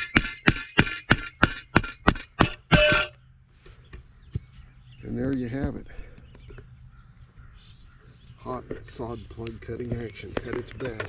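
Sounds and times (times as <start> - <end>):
hammer striking metal plunger: 0.0 - 3.2.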